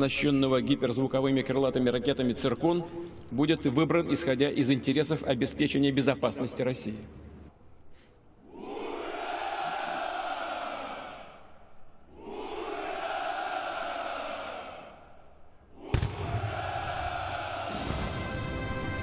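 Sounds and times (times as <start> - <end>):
crowd of men cheering: 8.5 - 11.5, 12.1 - 15.1, 15.8 - 18.4
sharp bang: 15.9 - 16.8.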